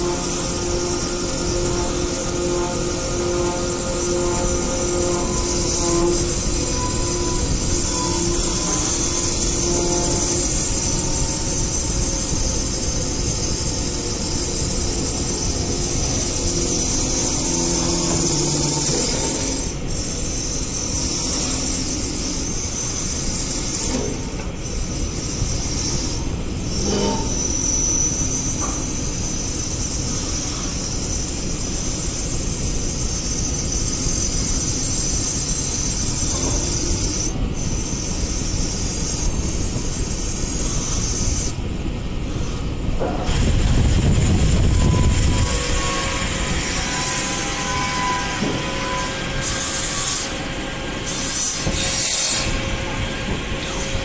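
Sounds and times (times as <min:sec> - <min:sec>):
wood-turning lathe cutting: 0:00.0 - 0:24.5, 0:42.4 - 0:54.0.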